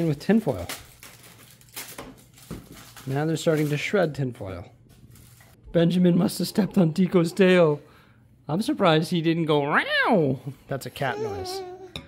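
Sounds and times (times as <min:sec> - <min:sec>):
aluminium foil crinkling: 0:00.0 - 0:04.1, 0:05.0 - 0:05.6.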